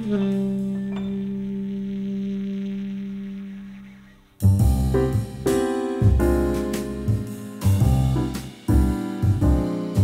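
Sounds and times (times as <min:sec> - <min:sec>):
calm instrumental music: 0:00.0 - 0:10.0.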